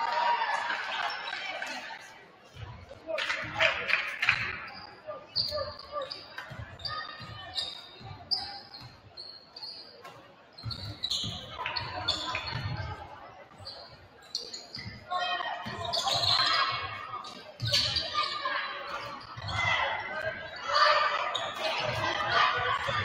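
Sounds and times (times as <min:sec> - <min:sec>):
sneaker squeaks: 0:04.3 - 0:23.0.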